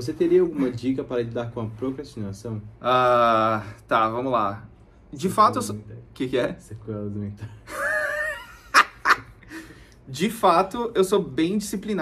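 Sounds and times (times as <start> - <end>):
man laughing: 7.4 - 9.7.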